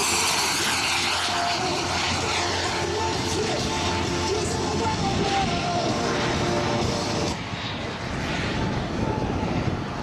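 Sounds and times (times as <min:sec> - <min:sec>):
model jet whine passing: 0:00.0 - 0:10.0
background music: 0:00.1 - 0:07.4.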